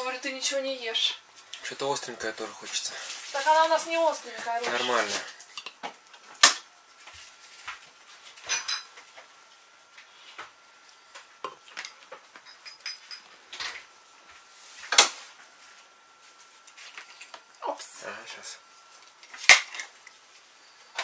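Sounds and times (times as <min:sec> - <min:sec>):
cutlery clinking against plates: 0:08.4 - 0:09.0, 0:11.5 - 0:13.8.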